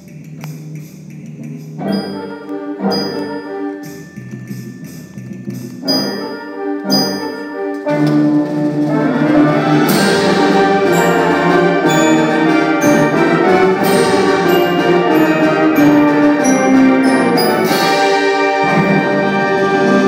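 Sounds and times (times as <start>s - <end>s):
concert band playing: 1.8s - 20.0s
brass section leading: 5.8s - 20.0s.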